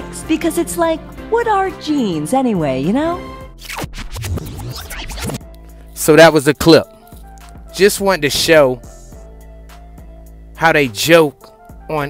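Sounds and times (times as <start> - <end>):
background music beat: 0.0 - 12.0
record scratching: 3.6 - 5.4.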